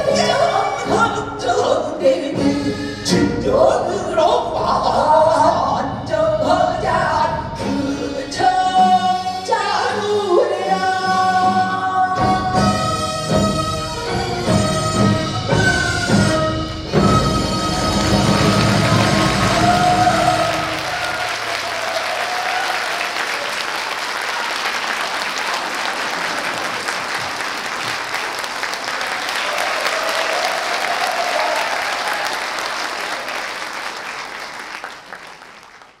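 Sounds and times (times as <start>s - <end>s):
audience applause: 17.7s - 36.0s.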